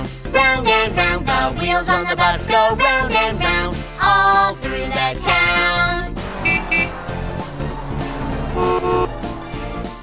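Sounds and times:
children's cartoon music: 0.0 - 10.0
bus horn beeping: 6.2 - 9.6.

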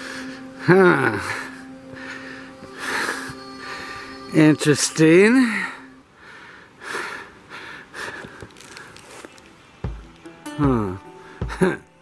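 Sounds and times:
footsteps crunching on snow: 8.2 - 10.2.

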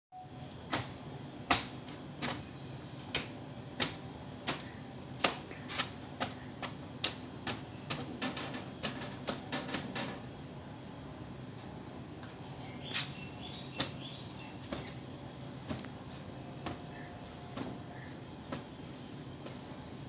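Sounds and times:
low steady hum: 0.1 - 20.0.

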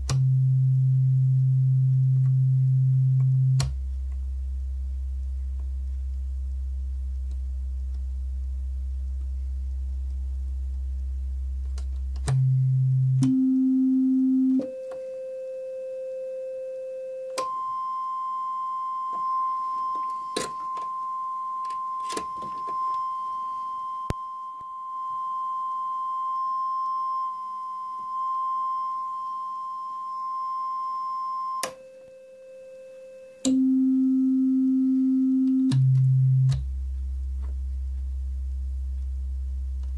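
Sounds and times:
synthesizer pure tone: 0.0 - 3.9, 12.2 - 36.9.

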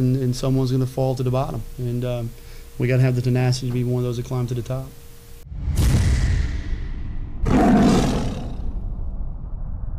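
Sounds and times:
low rumble: 5.4 - 9.9
roar-like hit: 5.5 - 9.9.

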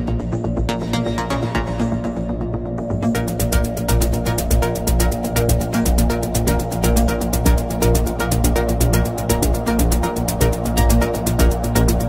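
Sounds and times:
synth melody: 0.8 - 12.0
fast hi-hats: 3.0 - 12.0.

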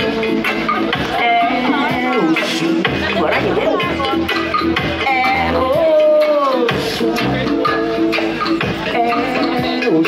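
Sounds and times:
live reggae band: 0.0 - 10.0.

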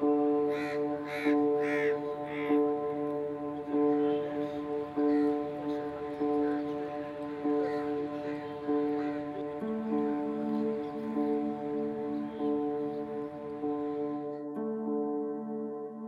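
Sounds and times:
pulsing sustained background music: 0.0 - 16.0.

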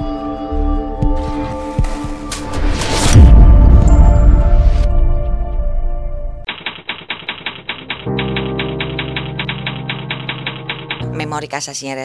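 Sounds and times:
fast even ticking: 6.5 - 11.4.

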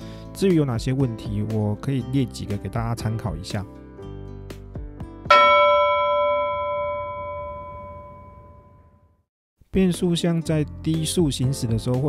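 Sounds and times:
bright bell chime: 5.3 - 9.0.

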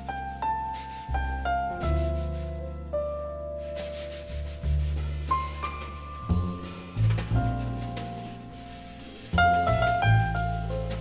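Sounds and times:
double bass notes: 0.0 - 11.0
piano notes ringing: 0.0 - 11.0
brushes swishing on snare drum: 0.5 - 2.8, 3.6 - 11.0.

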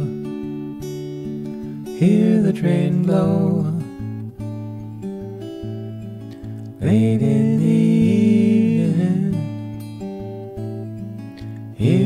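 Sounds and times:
person singing: 0.0 - 0.2, 2.0 - 4.0, 6.8 - 9.7, 11.8 - 12.0
fingerpicked acoustic guitar: 0.0 - 12.0.

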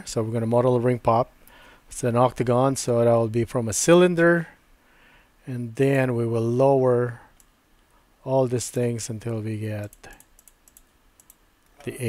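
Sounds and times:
person speaking: 8.2 - 10.2, 11.7 - 12.0.

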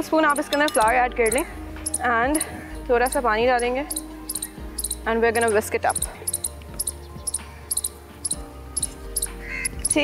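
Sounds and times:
baby squirrel chirping: 1.2 - 10.0.

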